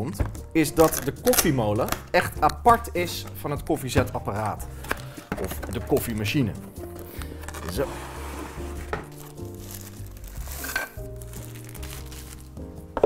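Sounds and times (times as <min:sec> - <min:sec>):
background music: 0:00.0 - 0:13.0
cardboard rustling and scraping: 0:05.4 - 0:12.4.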